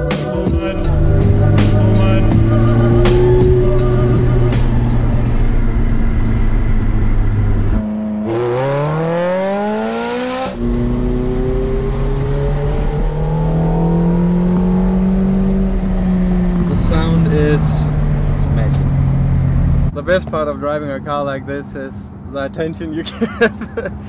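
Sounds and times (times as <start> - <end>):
sports car engine revving: 0.0 - 20.2.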